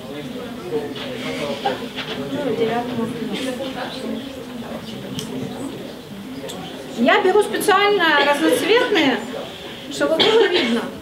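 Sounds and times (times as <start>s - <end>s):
murmured voices: 0.0s - 11.0s.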